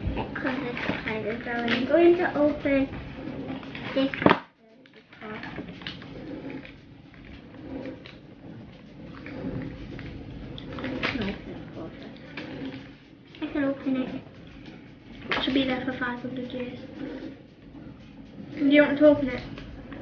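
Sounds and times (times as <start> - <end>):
quiet background talk: 3.9 - 5.6.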